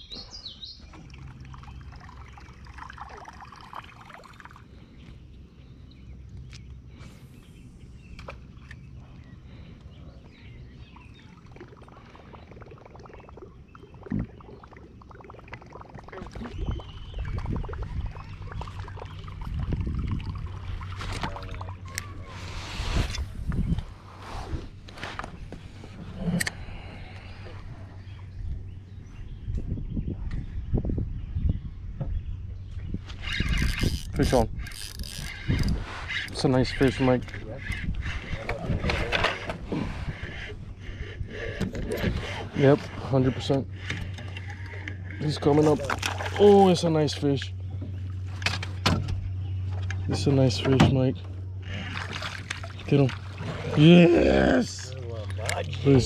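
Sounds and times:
water sloshing around canoe: 8.0 - 23.0, 33.1 - 56.0.

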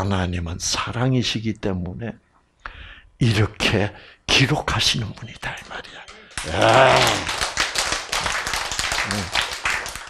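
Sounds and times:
audience clapping: 6.4 - 10.0.

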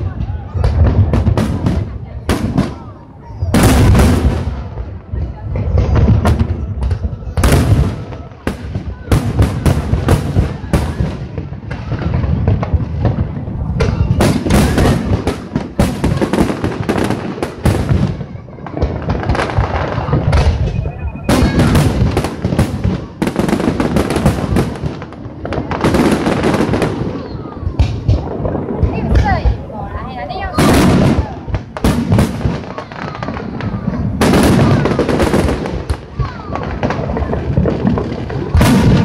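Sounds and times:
fireworks bursting: 0.0 - 39.0.

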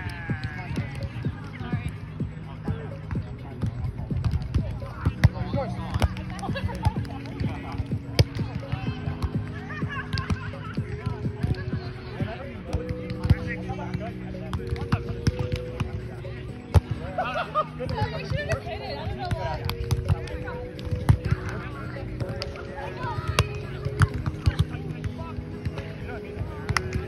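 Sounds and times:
background music with held notes: 0.0 - 27.0.

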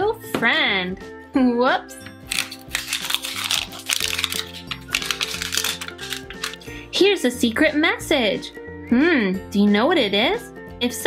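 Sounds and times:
background music: 0.0 - 11.0
plastic wrapping crinkling: 2.3 - 6.8.

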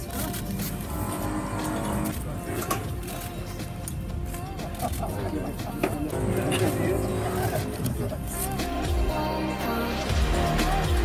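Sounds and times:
man laughing: 4.5 - 5.8
man talking: 5.1 - 8.5.

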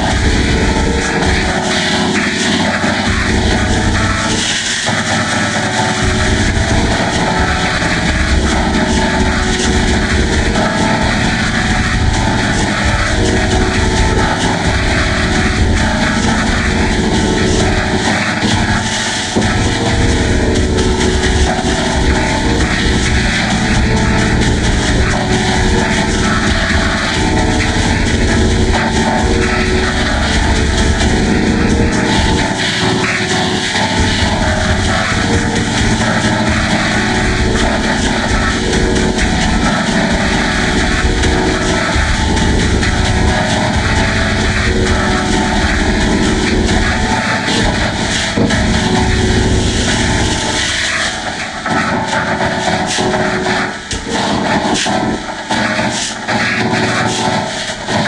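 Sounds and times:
distorted karaoke song drone: 0.0 - 58.0.

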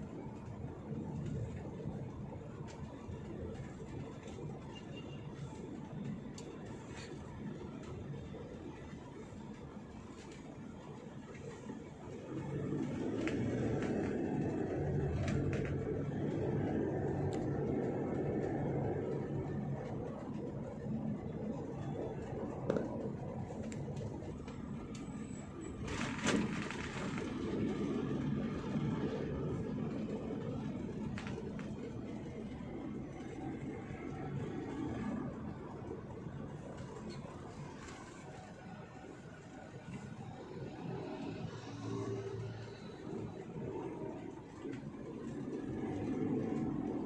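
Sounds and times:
car engine and tyre rumble: 0.0 - 47.0.

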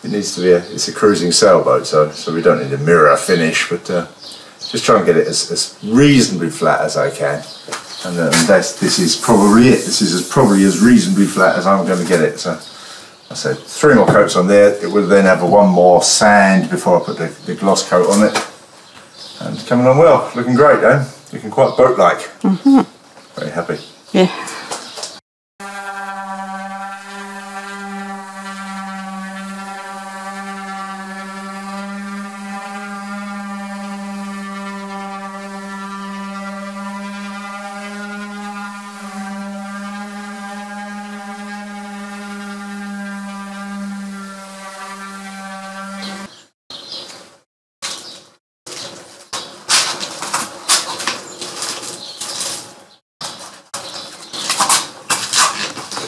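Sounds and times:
orbital sander humming: 25.6 - 46.3.

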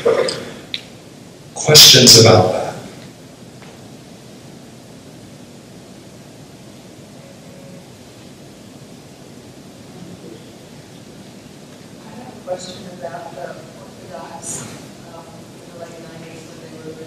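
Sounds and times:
room background hiss: 0.0 - 17.0.

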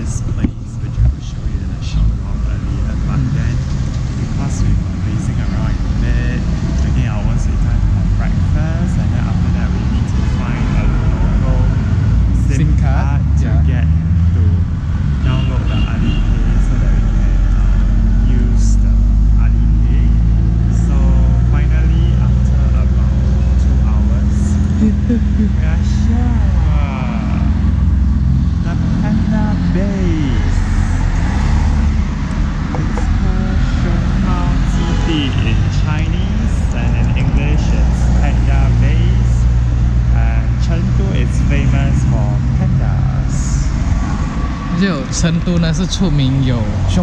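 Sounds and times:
indistinct voices talking: 0.0 - 47.0
motor vehicle rumble: 0.0 - 47.0.

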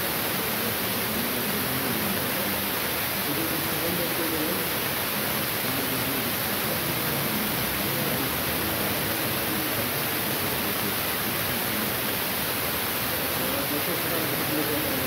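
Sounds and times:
faint voices: 0.0 - 15.0
steady hiss: 0.0 - 15.0.

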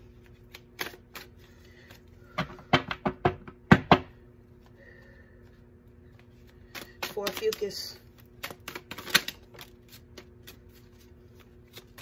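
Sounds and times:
cards being shuffled: 0.0 - 2.2, 5.9 - 12.0.

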